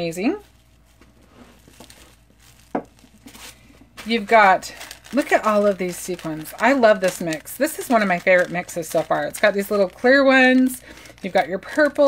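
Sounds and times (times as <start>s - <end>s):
plastic packaging crinkling: 0.0s - 12.0s.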